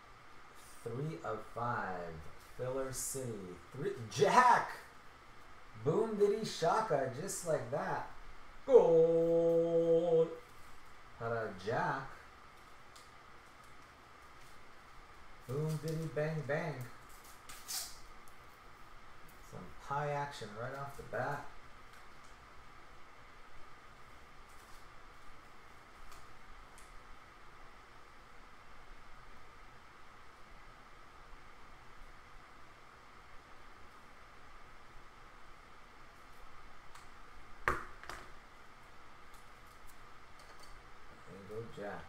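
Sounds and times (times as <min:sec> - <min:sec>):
faint room hum: 0:00.0 - 0:42.0.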